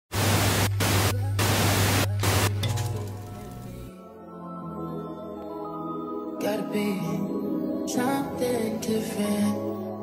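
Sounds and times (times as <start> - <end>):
television static hiss: 0.1 - 2.6
soft music: 0.6 - 10.0.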